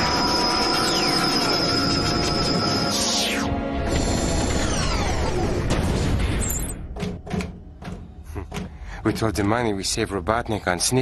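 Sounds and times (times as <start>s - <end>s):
mechanical whir: 0.0s - 6.1s.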